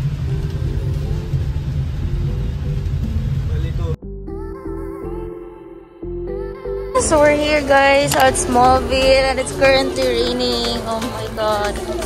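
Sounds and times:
low rumble with hiss: 0:00.0 - 0:04.0
faint music: 0:06.2 - 0:12.0
faint voices: 0:07.3 - 0:12.0.

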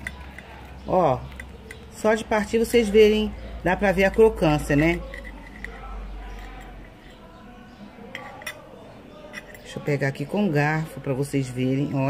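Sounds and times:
cutlery clinking on plate: 0:08.0 - 0:09.9.

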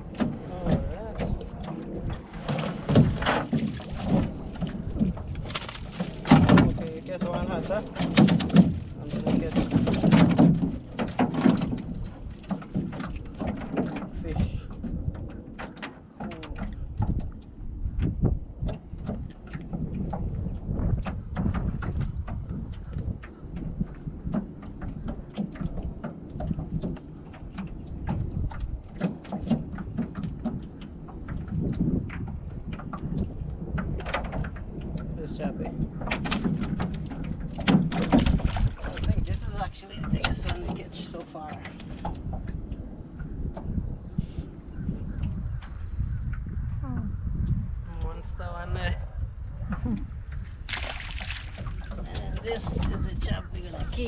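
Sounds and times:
knocks against boat: 0:00.0 - 0:17.3, 0:18.0 - 0:42.6
water dripping and splashing: 0:00.0 - 0:46.6, 0:49.7 - 0:54.0.

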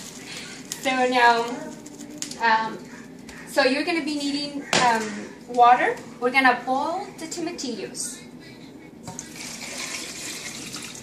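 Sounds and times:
water pouring into a pot: 0:09.2 - 0:11.0.

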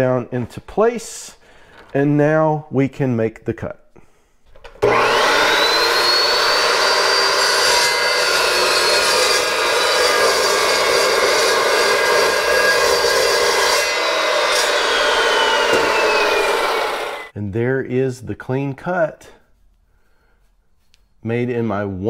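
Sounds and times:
chop saw cutting steel: 0:04.8 - 0:17.3
saw motor spinning down: 0:04.8 - 0:17.3.

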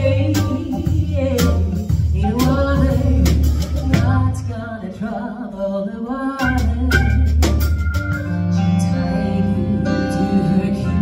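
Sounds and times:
woman singing: 0:00.0 - 0:11.0
drum and cymbal hits: 0:06.4 - 0:08.4
keyboard chords: 0:06.5 - 0:11.0.

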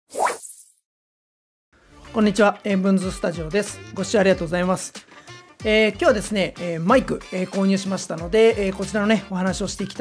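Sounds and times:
rising plop sound effect: 0:00.1 - 0:00.7.

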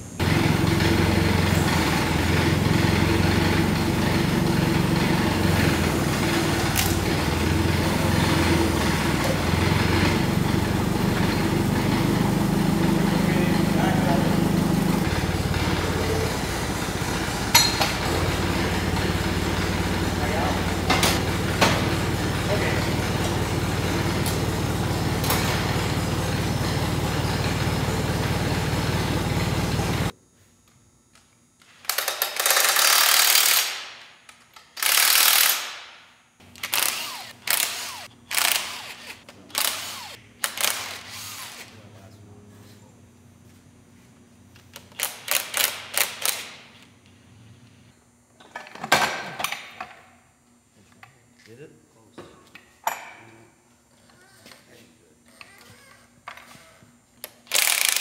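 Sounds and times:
forklift engine running: 0:00.0 - 0:30.2, 0:36.4 - 0:40.2
impact wrench bursts: 0:00.2 - 0:30.1, 0:31.8 - 0:34.0, 0:34.6 - 0:41.8, 0:44.7 - 0:46.7, 0:57.2 - 0:58.0
metal clanks: 0:17.4 - 0:19.1.

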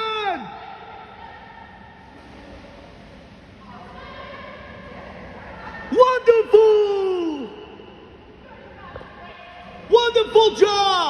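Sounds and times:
indoor hall hiss: 0:00.0 - 0:11.0.

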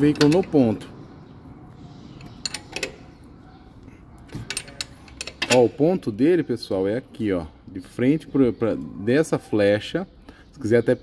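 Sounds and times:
wrench clicking on metal bolt: 0:00.0 - 0:00.6, 0:02.2 - 0:03.1, 0:04.3 - 0:06.0.

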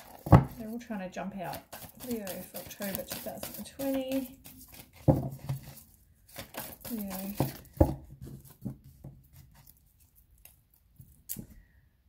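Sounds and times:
cards being shuffled: 0:01.5 - 0:11.5.

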